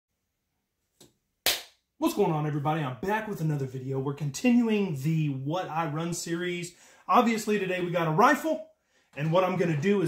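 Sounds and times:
sharp hand clap: 1.4 - 1.8.

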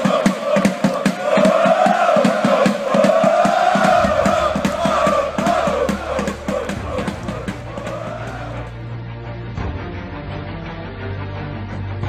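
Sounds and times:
steady drumbeat: 0.0 - 8.8
supporters chanting: 0.0 - 8.9
music track: 0.0 - 12.0.

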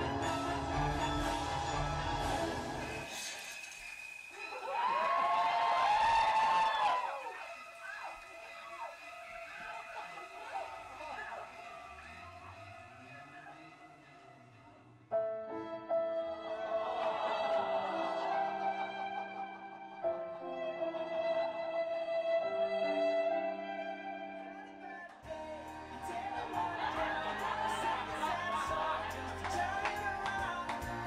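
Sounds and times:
backing track music: 0.0 - 3.1, 15.2 - 31.0.

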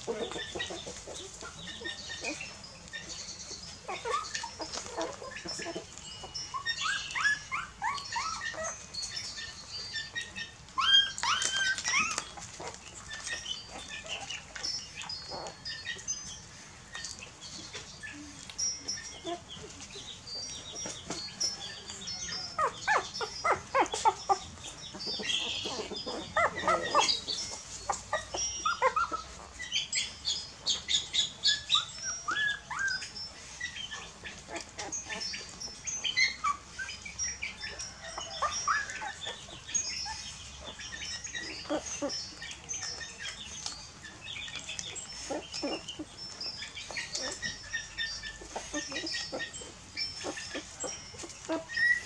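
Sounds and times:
puppies suckling: 0.0 - 29.8, 30.5 - 52.0
puppies squeaking: 0.0 - 52.0
small birds chirping: 0.0 - 52.0.

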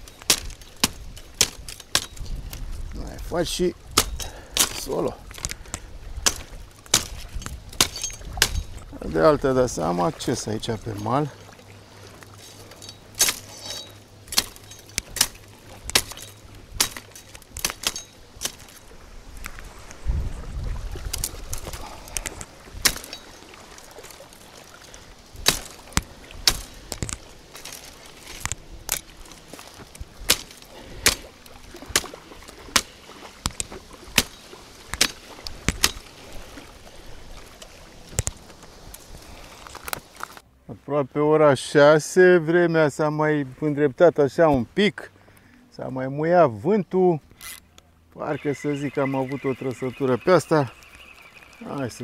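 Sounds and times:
machete chopping brush: 0.0 - 2.4, 3.9 - 8.8, 13.2 - 18.8, 22.8 - 23.3, 25.4 - 29.1, 30.2 - 36.2.

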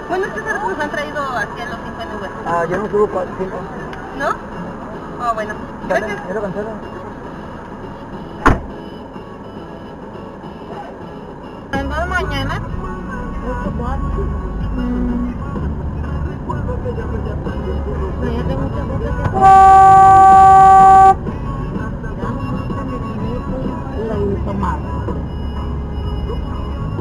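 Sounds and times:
car road noise: 0.0 - 27.0
sharp thump: 8.4 - 8.8
car cabin hum: 13.5 - 21.2
car horn blast: 19.3 - 21.3.

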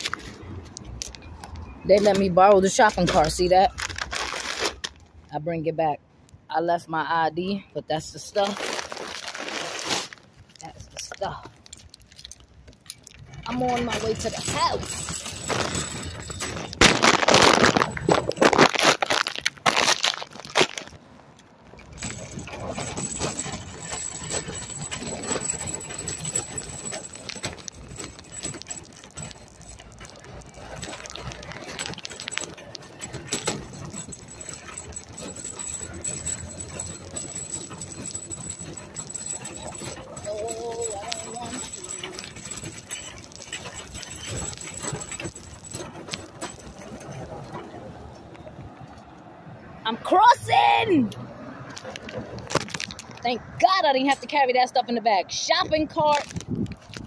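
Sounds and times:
street noise: 0.0 - 57.0
shopping cart rattling: 1.4 - 5.0, 8.2 - 21.0, 21.7 - 48.0, 52.6 - 54.7.

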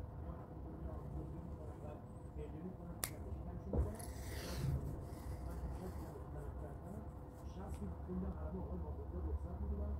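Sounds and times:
low steady hum: 0.0 - 9.9.

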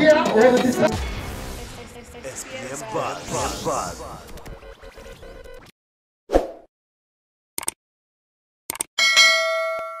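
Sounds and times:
quick clicks: 7.6 - 7.8, 8.7 - 8.9
bright bell ding: 9.0 - 10.0.

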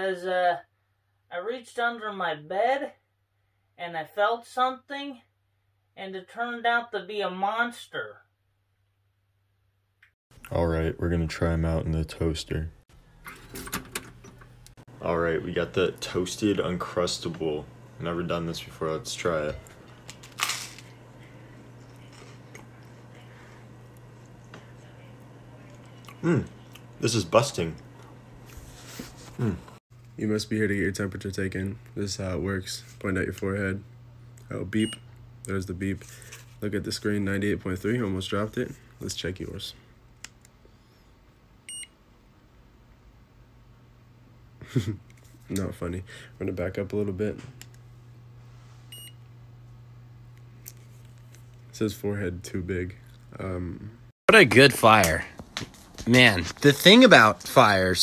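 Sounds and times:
steady low hum: 10.4 - 58.0
quiet chewing: 21.5 - 27.0.

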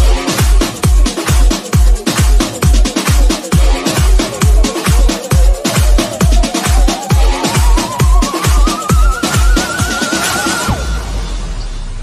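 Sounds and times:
kick drum beat: 0.0 - 10.8.

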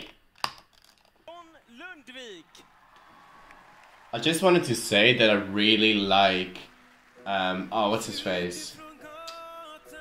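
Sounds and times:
person speaking: 1.2 - 2.7.

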